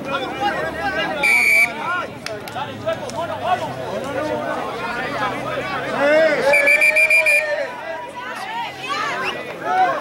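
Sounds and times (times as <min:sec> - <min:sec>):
players shouting: 0:00.0 - 0:10.0
referee's whistle pips: 0:01.2 - 0:01.8, 0:06.5 - 0:07.5.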